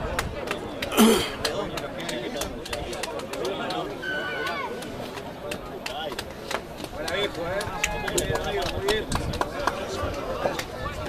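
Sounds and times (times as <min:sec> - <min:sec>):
crowd shouting and calling out: 0:00.0 - 0:11.0
sharp taps and knocks: 0:04.7 - 0:09.8.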